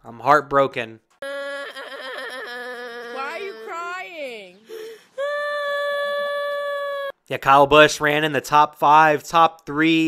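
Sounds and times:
boy crying wail: 1.2s - 7.2s
person asking a question: 3.1s - 4.6s.

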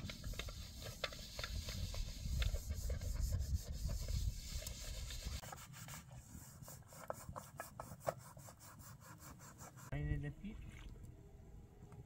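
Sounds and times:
scrubbing a pot by hand: 0.0s - 9.9s.

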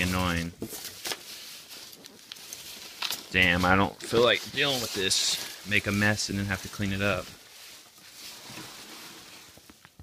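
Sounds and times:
packing peanuts rustling: 0.0s - 10.0s.

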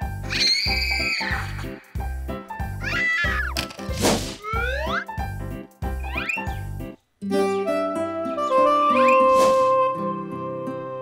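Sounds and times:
cartoon cat meowing: 2.8s - 3.6s, 4.4s - 5.1s.

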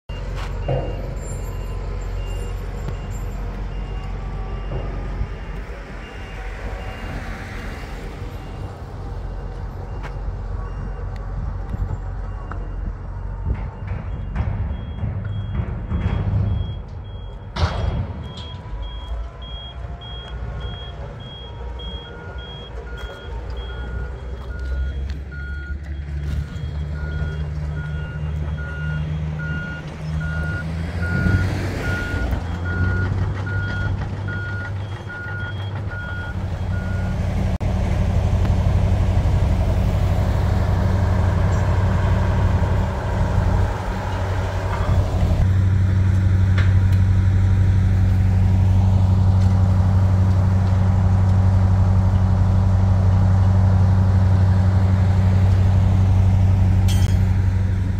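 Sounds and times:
diesel machine engines droning: 0.0s - 57.9s
low reversing alarm beeping: 0.1s - 7.4s, 8.3s - 37.3s
high reversing alarm beeping: 12.3s - 37.2s.

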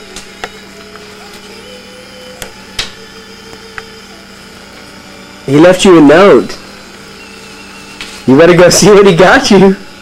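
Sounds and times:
held higher tone: 0.0s - 8.5s.

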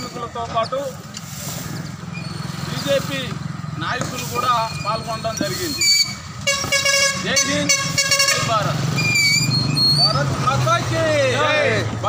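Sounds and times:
people talking: 0.0s - 1.0s, 2.7s - 6.0s, 7.1s - 8.8s, 10.0s - 12.0s
vehicle horn honking: 6.4s - 8.8s.

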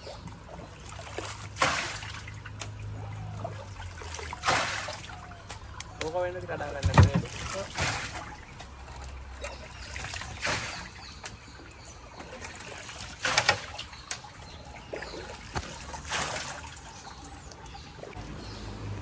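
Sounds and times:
water dripping: 0.0s - 19.0s
water splashes: 0.0s - 19.0s.

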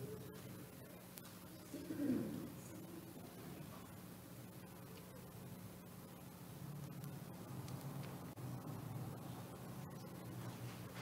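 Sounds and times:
faint low voice-like sound: 0.0s - 4.0s.

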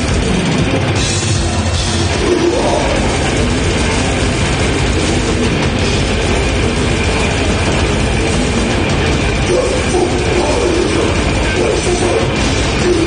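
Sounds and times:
distorted electric guitars: 0.0s - 13.0s
very fast drumming: 0.0s - 13.0s.

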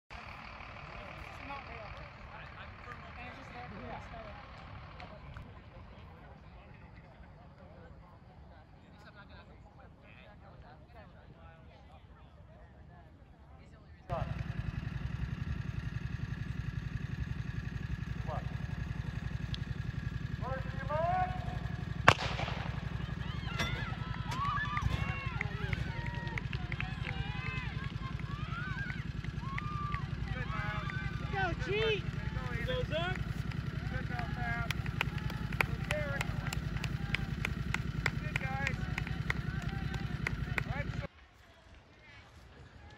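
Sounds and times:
distant chatter of people: 0.1s - 42.9s
steady low rumble: 14.1s - 41.1s
crowd shouting and cheering: 15.8s - 41.1s
starting pistol shot: 22.0s - 25.3s.

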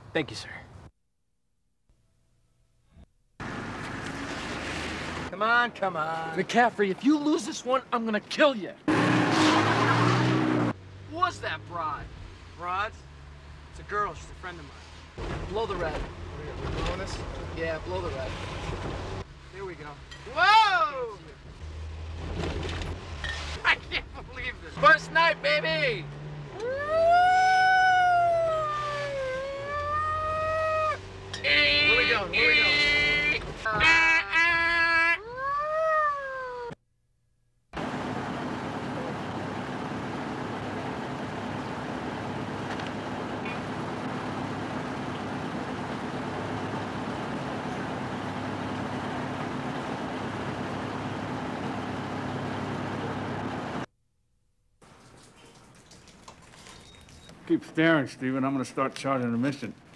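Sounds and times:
fire engine siren wailing: 26.5s - 33.4s
horn blasts: 31.3s - 34.7s.

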